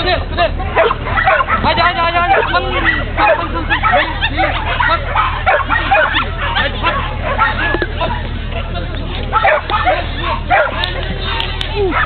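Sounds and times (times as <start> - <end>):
people talking: 0.0 - 12.0
dogs yapping: 0.6 - 12.0.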